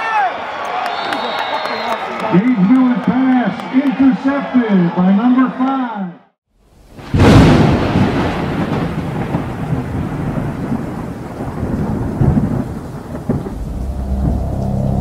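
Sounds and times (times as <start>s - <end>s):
rain hiss: 6.6s - 15.0s
rumbling thunder: 7.0s - 15.0s
thunderclap: 7.0s - 15.0s.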